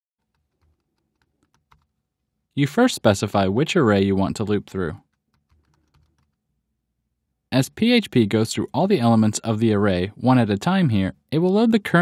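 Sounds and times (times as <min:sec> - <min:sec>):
computer keyboard keystrokes: 0:00.2 - 0:01.9, 0:05.0 - 0:06.4.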